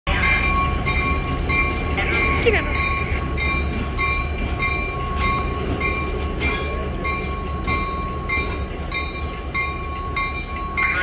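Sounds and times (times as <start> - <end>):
locomotive bell ringing: 0.1 - 11.0
locomotive engine rumble: 0.1 - 11.0.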